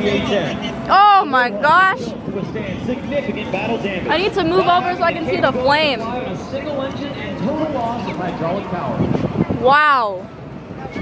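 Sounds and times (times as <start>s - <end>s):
crowd talking outdoors: 0.0s - 11.0s.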